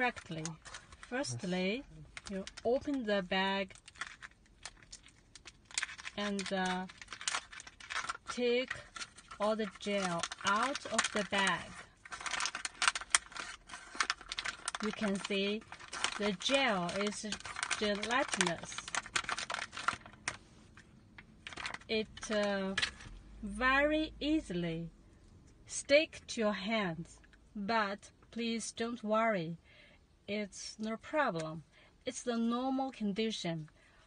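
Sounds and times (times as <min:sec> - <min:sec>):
plastic bag crinkling: 0:00.0 - 0:01.4, 0:02.1 - 0:20.8, 0:21.4 - 0:23.2.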